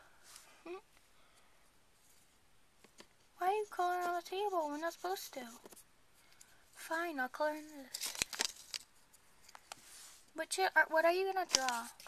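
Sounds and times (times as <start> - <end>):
paper rustling: 7.6 - 10.3, 11.3 - 12.0.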